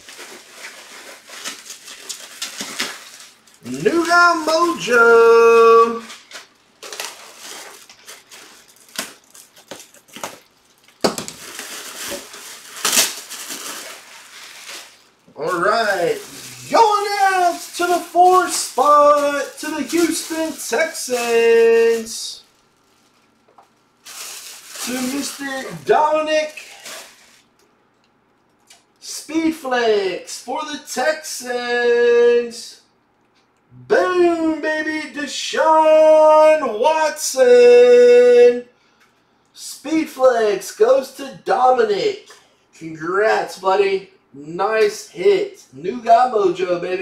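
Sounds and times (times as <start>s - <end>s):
plastic wrapping crinkling and tearing: 0.0s - 27.6s
speech: 3.6s - 6.2s, 15.3s - 22.4s, 24.8s - 26.8s, 29.0s - 32.9s, 33.8s - 38.7s, 39.6s - 47.0s.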